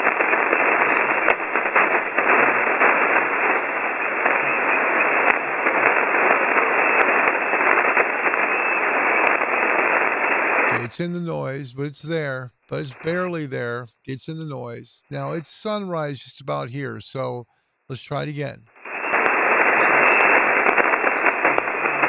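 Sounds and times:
radio band noise hiss: 0.0 - 22.0
weak radio voice: 0.7 - 5.0, 10.7 - 18.7, 19.7 - 20.4, 21.1 - 22.0.

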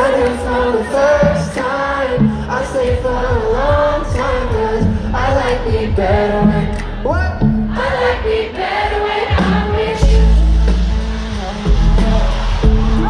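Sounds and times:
live pop song over loudspeakers: 0.0 - 13.0
heavy bass: 2.2 - 8.0, 9.4 - 13.0.

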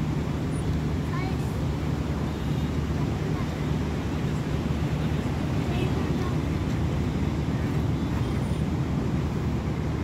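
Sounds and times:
low rumbling outdoor noise: 0.0 - 10.0.

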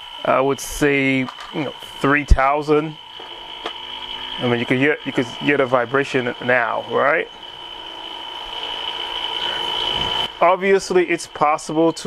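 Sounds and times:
machine vibration: 0.0 - 12.0
spin coater high whine: 0.0 - 12.0.

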